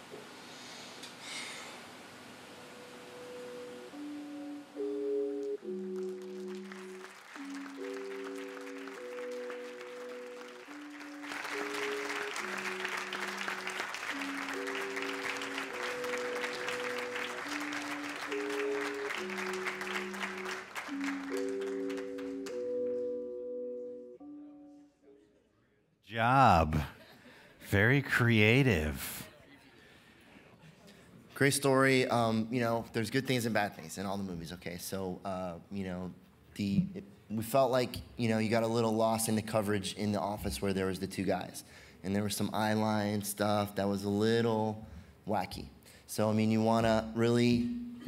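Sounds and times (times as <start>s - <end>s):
slow music of sustained chords: 2.4s - 25.2s
audience applauding: 5.7s - 23.0s.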